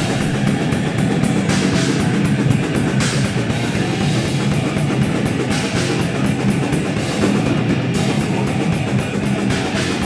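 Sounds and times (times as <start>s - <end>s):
distorted electric guitar: 0.0s - 10.0s
drum kit: 0.0s - 10.0s.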